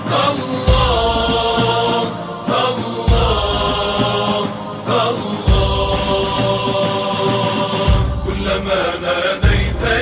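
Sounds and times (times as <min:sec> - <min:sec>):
voices chanting long notes: 0:00.0 - 0:10.0
deep drum beat: 0:00.6 - 0:10.0.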